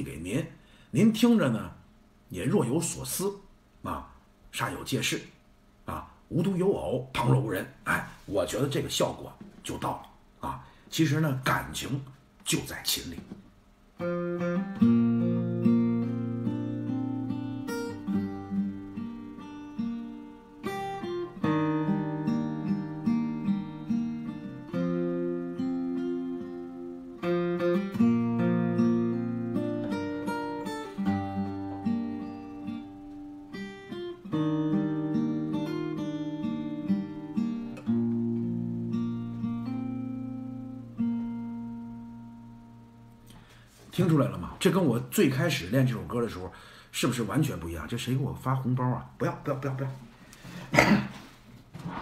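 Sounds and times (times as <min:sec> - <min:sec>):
solo acoustic guitar: 0:13.1 - 0:44.2.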